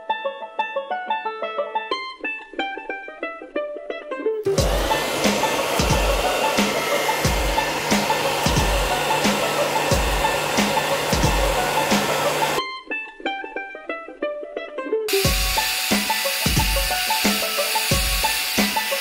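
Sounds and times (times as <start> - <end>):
plucked-string background music: 0.0 - 19.0
hair dryer blowing: 4.5 - 12.6, 15.1 - 19.0.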